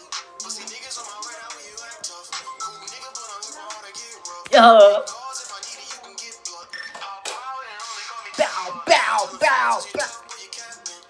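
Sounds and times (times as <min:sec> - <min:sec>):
hip hop music: 0:00.0 - 0:11.0
man rapping over a beat: 0:00.0 - 0:11.0.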